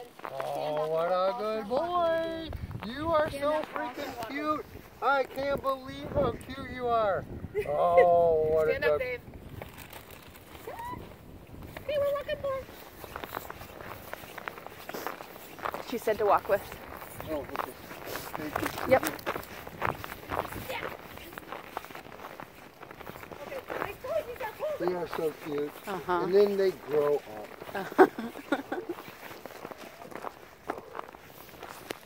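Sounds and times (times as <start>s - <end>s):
boot footsteps on snow: 0.0s - 5.4s, 11.6s - 32.0s.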